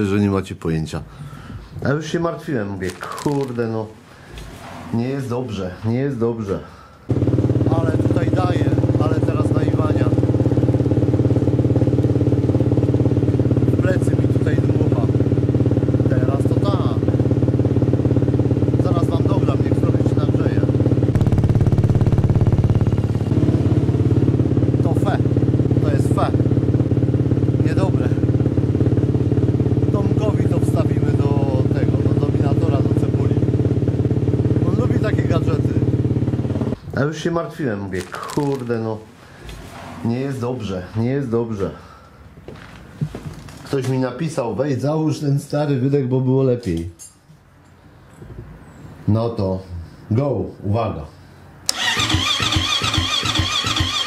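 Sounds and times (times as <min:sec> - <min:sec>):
dirt bike engine idling: 0:07.1 - 0:36.8, 0:51.7 - 0:54.0.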